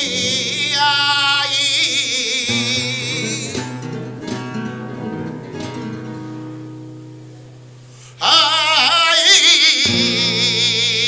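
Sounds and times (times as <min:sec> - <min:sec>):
flamenco guitar playing: 0:00.0 - 0:11.0.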